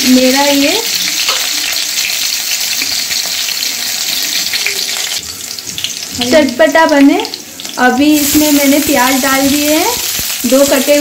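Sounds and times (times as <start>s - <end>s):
chillies sizzling in hot oil: 0.0s - 11.0s.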